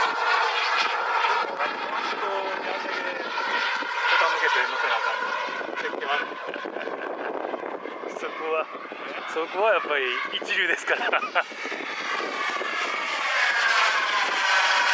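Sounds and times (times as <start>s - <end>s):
model jet high whine: 0.0s - 14.9s.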